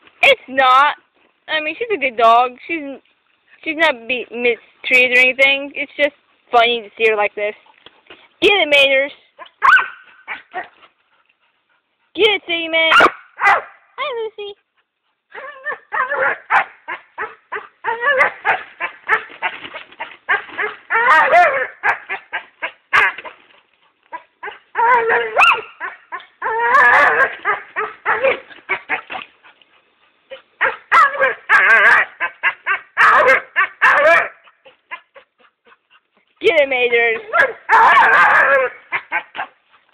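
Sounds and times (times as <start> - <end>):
dog yipping and whining: 9.4 - 10.9, 12.9 - 13.7, 15.3 - 23.4, 24.1 - 29.2, 30.3 - 35.9, 37.2 - 39.6.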